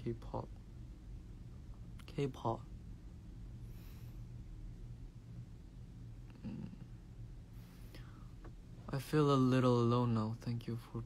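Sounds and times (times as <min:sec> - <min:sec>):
low hum: 0:00.0 - 0:11.0
man speaking: 0:02.0 - 0:02.7, 0:08.9 - 0:11.0.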